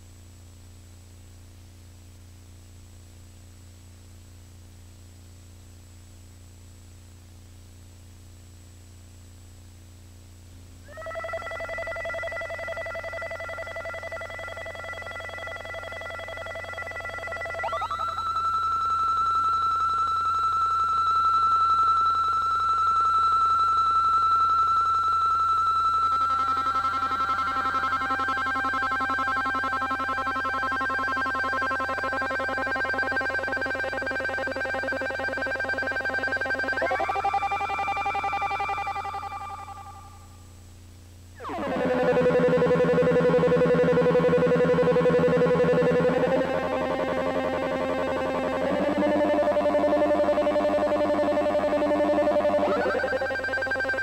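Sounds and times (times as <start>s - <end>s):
sustained synthesizer chords: 41.4s - 54.0s.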